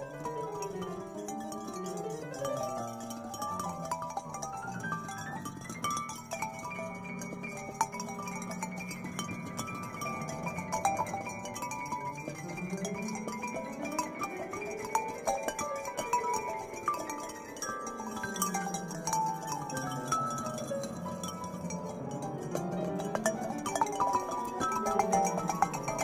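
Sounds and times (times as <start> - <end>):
solo piano music: 0.0 - 26.0.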